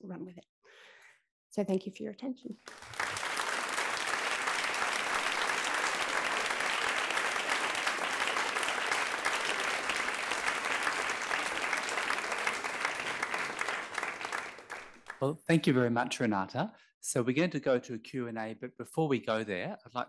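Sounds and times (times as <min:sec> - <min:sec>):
audience applauding: 0:02.6 - 0:15.4.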